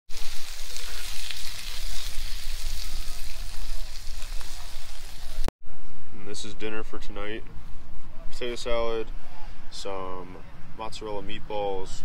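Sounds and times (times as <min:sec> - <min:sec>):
meatballs sizzling in a skillet: 0:00.1 - 0:05.5.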